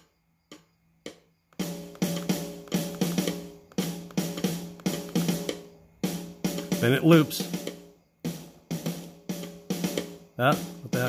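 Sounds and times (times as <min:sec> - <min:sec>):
soft clicks: 0:00.0 - 0:01.6
drum and hi-hat hits: 0:01.6 - 0:11.0.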